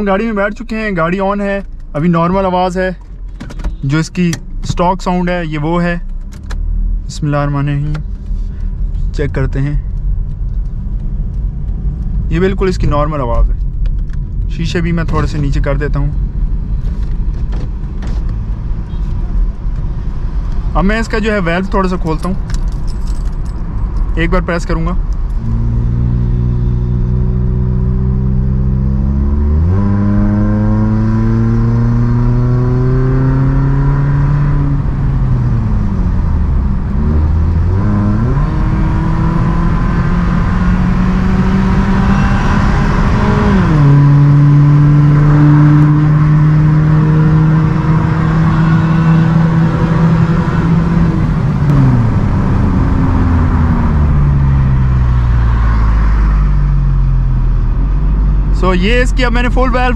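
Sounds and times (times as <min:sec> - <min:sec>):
car engine accelerating hard: 0:08.5 - 0:59.9.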